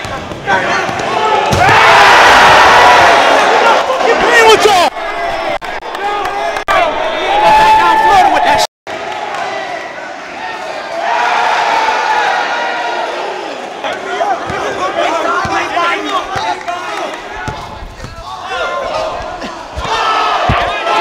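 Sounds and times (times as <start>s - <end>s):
crowd shouting and cheering: 0.0s - 21.0s
scattered shouting voices: 18.2s - 21.0s
basketball bouncing: 19.1s - 20.9s.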